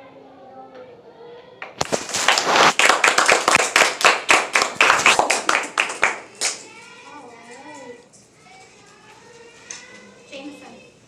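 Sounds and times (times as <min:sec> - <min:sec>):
fast hand clapping: 0:01.6 - 0:06.7
voices: 0:05.2 - 0:11.0.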